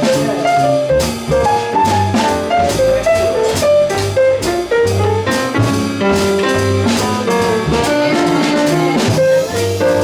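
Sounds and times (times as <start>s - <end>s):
jazz piano trio playing: 0.0s - 10.0s.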